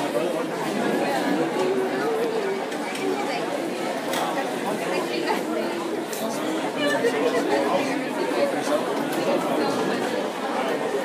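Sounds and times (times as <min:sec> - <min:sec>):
indistinct chatter of many people: 0:00.0 - 0:11.0.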